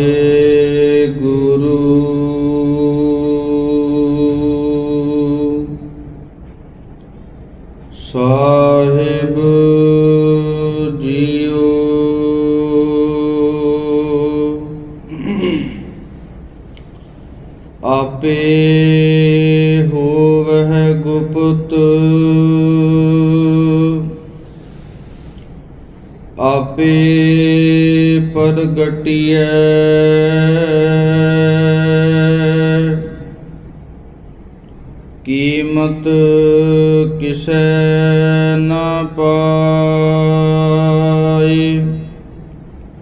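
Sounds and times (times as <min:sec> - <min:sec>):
man chanting: 0:00.0 - 0:06.0, 0:08.0 - 0:16.1, 0:17.8 - 0:24.4, 0:26.4 - 0:33.4, 0:35.2 - 0:42.2
voice chanting one long note: 0:08.0 - 0:16.3.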